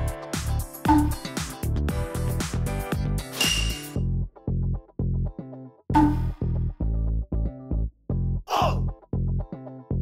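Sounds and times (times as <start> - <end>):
bass-heavy chopped music: 0.0 - 3.3.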